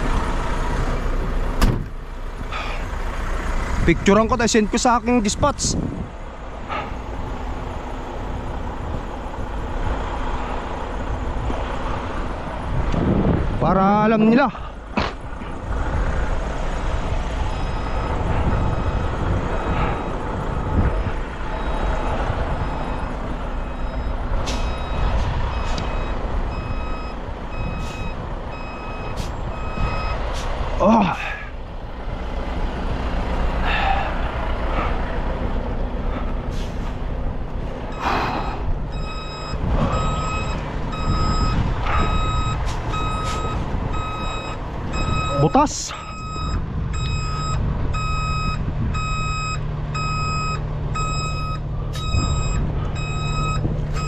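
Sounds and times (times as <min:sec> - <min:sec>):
diesel truck engines running: 0:00.0 - 0:54.0
truck backup alarm beeping: 0:14.0 - 0:30.6, 0:37.8 - 0:54.0.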